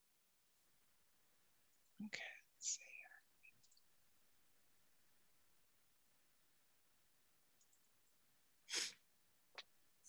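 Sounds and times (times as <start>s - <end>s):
person whispering quietly: 2.0s - 3.8s.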